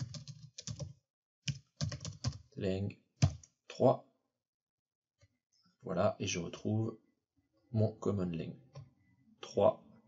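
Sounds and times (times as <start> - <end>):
computer keyboard typing: 0.0 - 2.4, 3.2 - 3.5.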